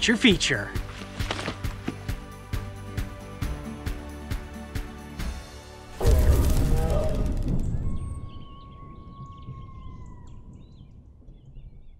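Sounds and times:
birds chirping: 6.9 - 11.9.

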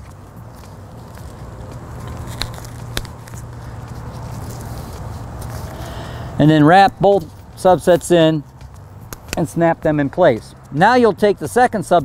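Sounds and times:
rustling and handling noise: 0.0 - 10.5
sharp clicks: 9.1 - 9.5.

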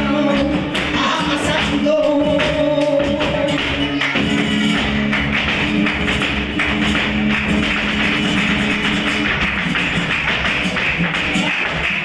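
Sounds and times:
dancer's footwork: 0.0 - 12.0
flamenco guitar: 0.0 - 12.0
rhythmic hand clapping: 0.0 - 12.0.

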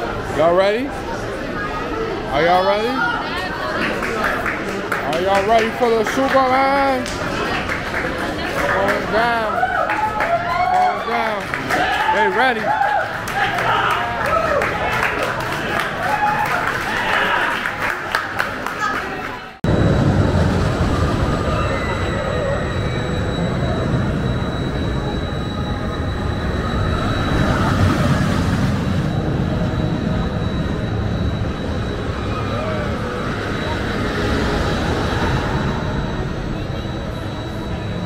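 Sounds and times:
crowd chatter: 0.0 - 19.8, 20.4 - 38.0
amusement ride machine rumbling: 19.6 - 38.0.

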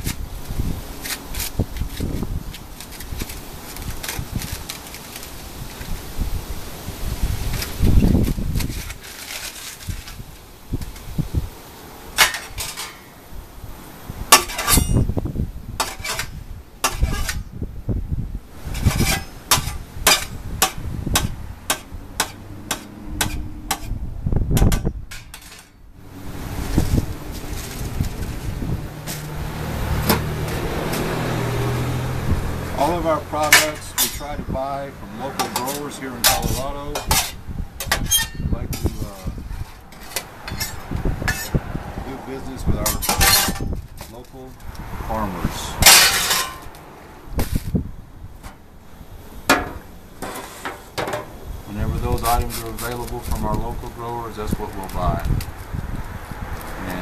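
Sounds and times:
aluminium foil crinkling: 1.0 - 6.0, 7.4 - 10.5, 26.8 - 28.5, 52.1 - 55.7.

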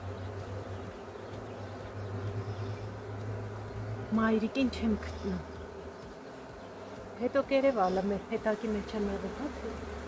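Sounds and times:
honeybees buzzing: 0.0 - 10.0
woman speaking: 4.1 - 5.5, 7.2 - 9.8.

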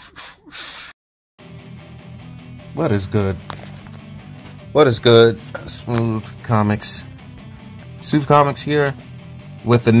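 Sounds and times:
breathy hissing bursts: 0.0 - 1.0.

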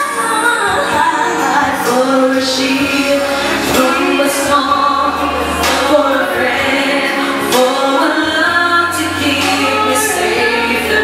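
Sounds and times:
group of voices singing: 0.0 - 11.0
low accompaniment: 0.9 - 11.0.

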